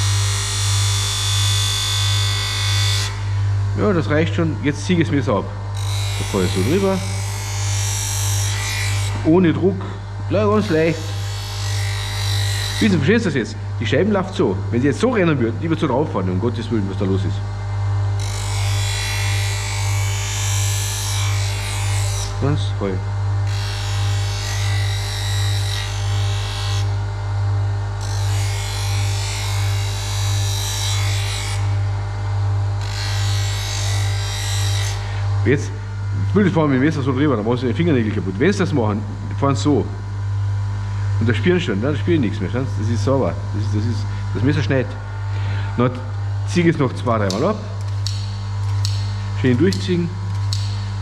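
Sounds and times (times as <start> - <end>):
bench grinder motor hum: 0.0 - 51.0
knife grinding on wheel: 5.7 - 9.6, 10.3 - 13.4, 18.1 - 22.6.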